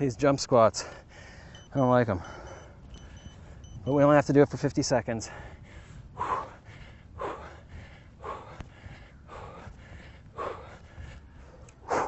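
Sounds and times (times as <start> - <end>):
man breathing hard: 0.8 - 3.8, 5.2 - 12.0.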